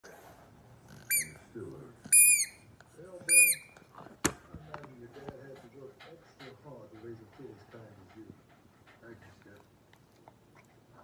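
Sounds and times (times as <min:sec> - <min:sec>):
squeaky toy squeaking: 0:01.0 - 0:01.4, 0:02.1 - 0:03.8.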